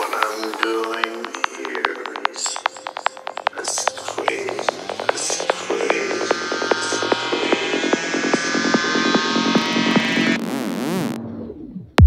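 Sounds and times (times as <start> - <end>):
layered synthesizer tones: 0.0 - 12.0.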